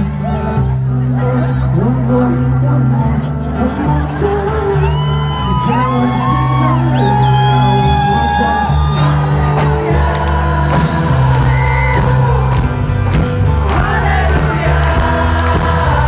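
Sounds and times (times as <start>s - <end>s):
pop-rock band music: 0.0s - 16.0s.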